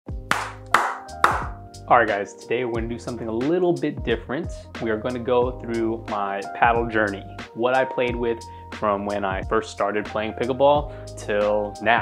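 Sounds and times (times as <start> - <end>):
hand claps: 0.1 - 1.6
music: 0.1 - 12.0.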